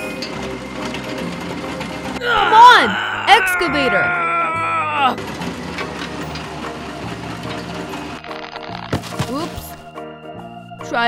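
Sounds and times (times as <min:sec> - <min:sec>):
rattling cartoon engine effect: 0:00.0 - 0:09.6.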